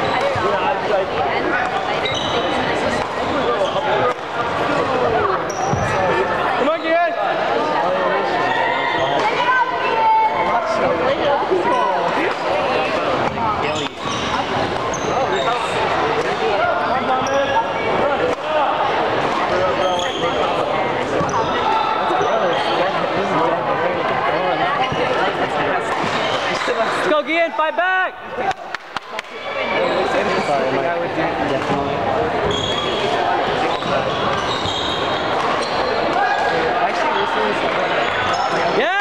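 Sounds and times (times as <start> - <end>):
voices echoing in hall: 0.0 - 39.0
shoes squeaking on floor: 1.7 - 4.1, 5.2 - 7.0, 13.6 - 15.9, 16.8 - 17.8, 19.7 - 22.9, 32.4 - 36.2, 37.0 - 38.8.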